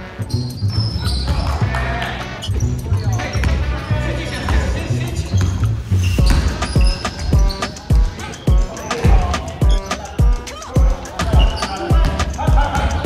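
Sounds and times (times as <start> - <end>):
background music with bass line: 0.0 - 13.0
basketballs bouncing on hardwood floor: 5.4 - 13.0.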